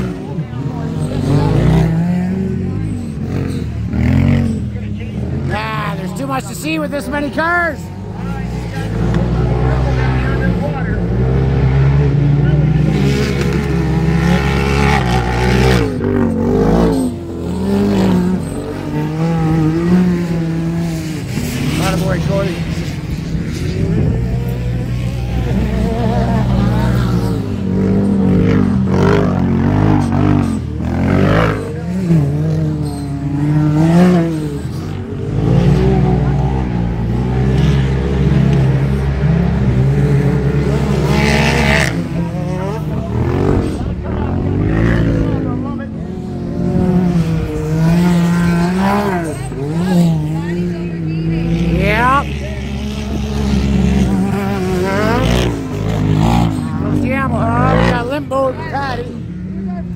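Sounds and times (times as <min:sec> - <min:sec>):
off-road vehicle engines revving: 0:00.0 - 0:59.9.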